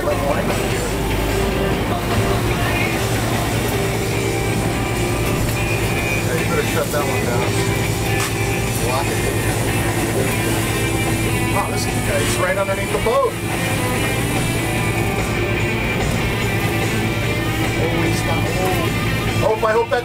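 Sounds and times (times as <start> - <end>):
boat engines running: 0.0 - 20.0
music playing: 0.0 - 20.0.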